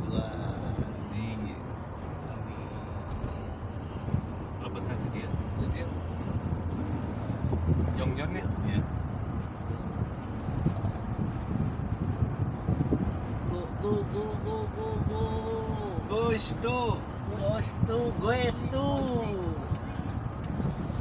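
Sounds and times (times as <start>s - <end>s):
car road and engine rumble: 0.0s - 21.0s.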